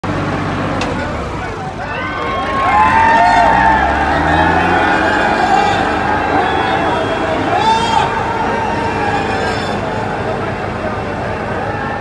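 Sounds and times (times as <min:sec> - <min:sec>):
tractor engines droning: 0:00.0 - 0:12.0
crowd shouting: 0:01.0 - 0:12.0.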